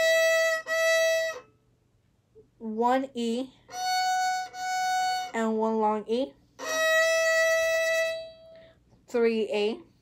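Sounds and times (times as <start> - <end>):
violin long bowed note: 0.0 - 1.5, 3.7 - 5.8, 6.6 - 8.7.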